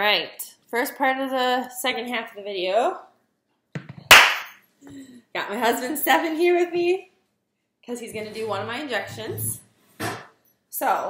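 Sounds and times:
sharp smack: 0:04.1 - 0:04.6.

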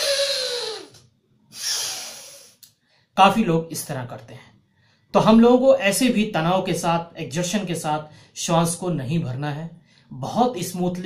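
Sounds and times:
noisy nasal breaths: 0:00.0 - 0:02.7.

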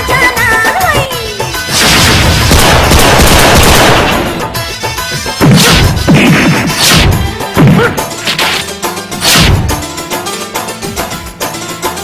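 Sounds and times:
trailer music: 0:01.1 - 0:11.6
rifle fire: 0:01.7 - 0:04.5.

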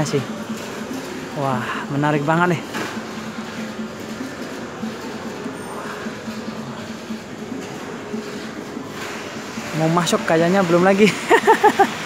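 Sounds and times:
shopping mall hubbub: 0:00.0 - 0:12.0.

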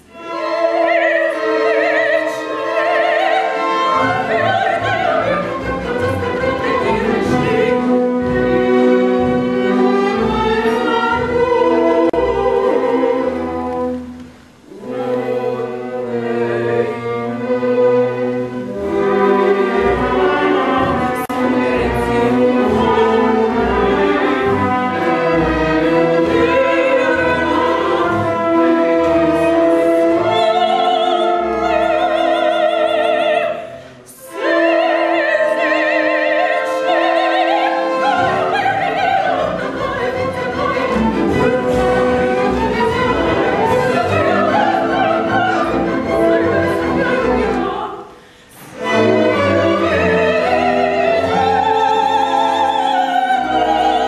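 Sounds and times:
operatic singing: 0:00.0 - 0:54.0
orchestra with bowed strings: 0:00.0 - 0:54.0.

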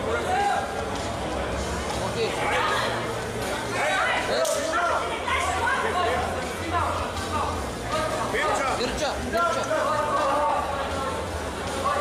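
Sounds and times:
voices talking and calling out: 0:00.0 - 0:12.0.

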